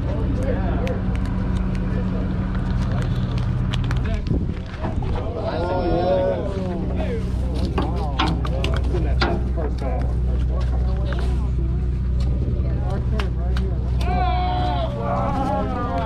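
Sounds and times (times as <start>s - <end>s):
boat engine drone: 0.0s - 4.1s, 5.3s - 16.0s
indistinct voices: 0.0s - 16.0s
sharp clicks and knocks: 7.6s - 11.2s.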